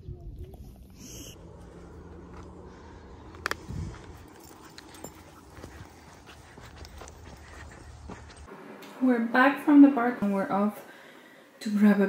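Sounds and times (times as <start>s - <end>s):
low steady rumble: 0.0s - 8.5s
footsteps on leafy dirt path: 1.4s - 8.5s.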